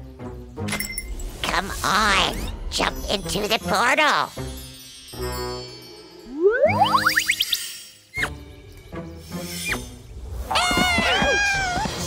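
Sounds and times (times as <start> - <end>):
background music: 0.0 - 12.0
swooping sound effects: 6.3 - 7.7.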